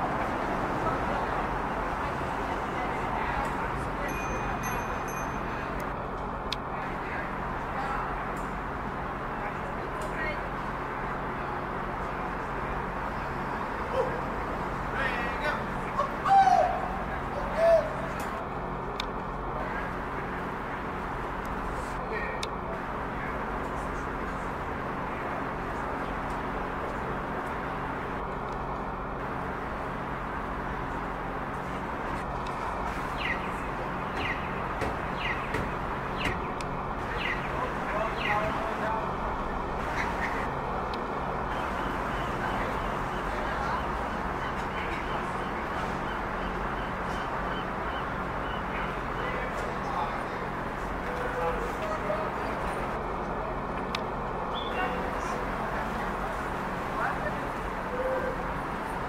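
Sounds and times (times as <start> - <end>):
outdoor background hum: 0.0 - 59.0
small birds chirping: 32.9 - 38.6, 54.5 - 55.0.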